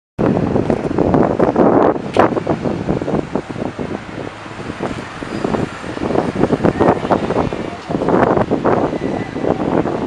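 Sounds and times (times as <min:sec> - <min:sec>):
trucks driving past: 0:00.2 - 0:10.0
wind buffeting microphone: 0:00.2 - 0:10.0.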